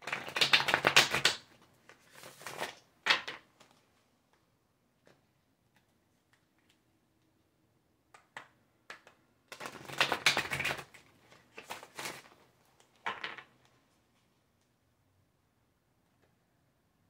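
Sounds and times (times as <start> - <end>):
cards tapping: 0.0 - 1.5, 8.2 - 11.0.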